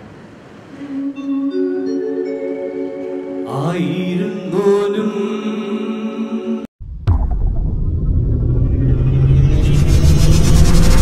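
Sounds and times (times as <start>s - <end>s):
low drone: 0.7s - 11.0s
deep rumble: 6.8s - 11.0s.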